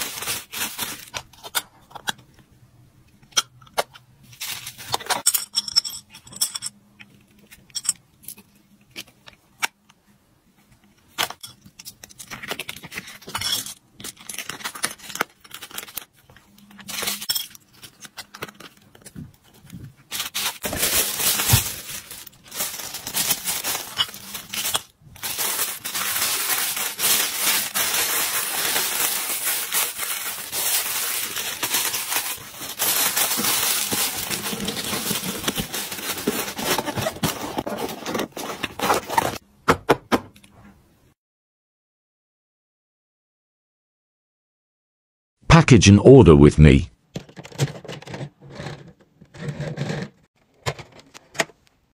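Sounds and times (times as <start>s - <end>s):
tissue paper crinkling: 0.0s - 1.1s, 20.1s - 39.4s.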